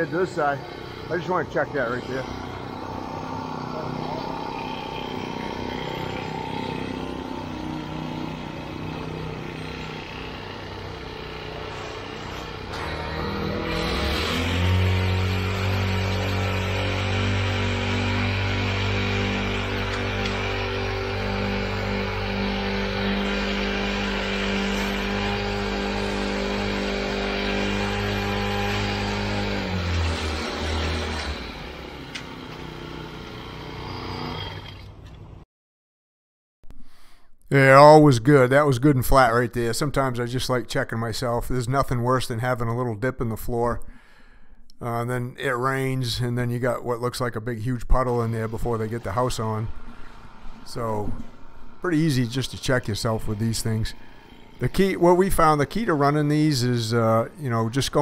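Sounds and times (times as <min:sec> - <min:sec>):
screed pulled across wet concrete: 0:00.0 - 0:35.0, 0:48.0 - 0:56.5
small engine running: 0:00.0 - 0:35.4, 0:48.0 - 0:58.0.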